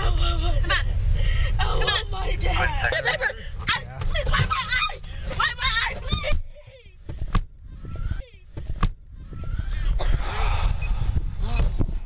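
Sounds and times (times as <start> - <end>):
low rumble and rustle: 0.0 - 12.0.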